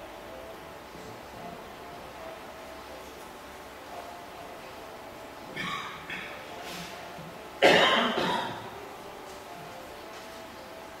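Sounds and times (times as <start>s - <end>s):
person coughing: 7.6s - 8.6s.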